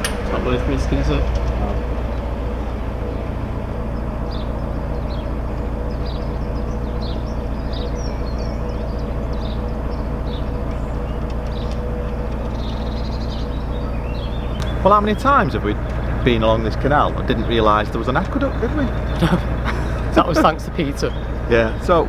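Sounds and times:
boat diesel engine running: 0:00.0 - 0:22.0
small birds chirping: 0:00.0 - 0:22.0.

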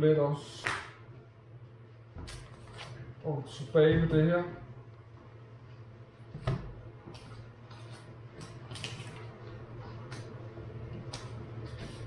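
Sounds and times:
fan heater humming: 0:00.0 - 0:12.0.

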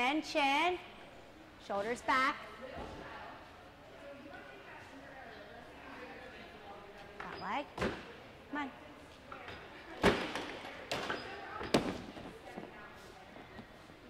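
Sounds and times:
gymnasts landing thuds: 0:10.0 - 0:12.3.

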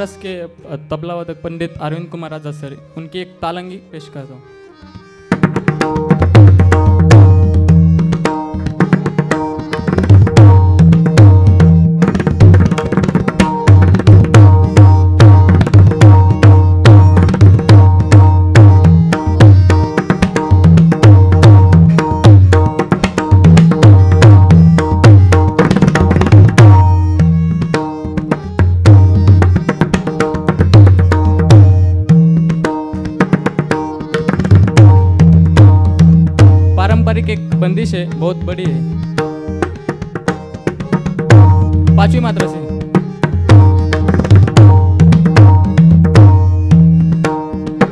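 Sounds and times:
harmonium melody: 0:00.0 - 0:47.9.

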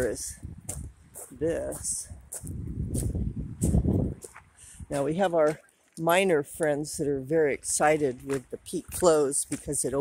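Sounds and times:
footsteps on gravel: 0:00.0 - 0:10.0
low rumble: 0:02.4 - 0:04.9.

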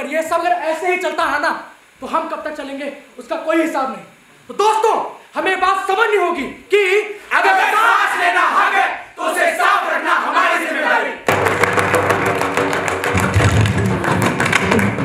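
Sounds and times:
performers shouting in unison: 0:07.3 - 0:11.3.

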